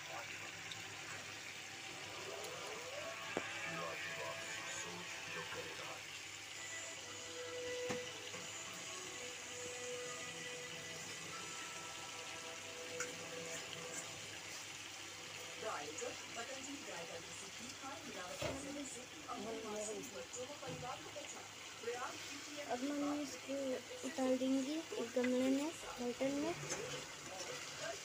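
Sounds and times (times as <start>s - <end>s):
curry bubbling and hissing: 0.0s - 28.0s.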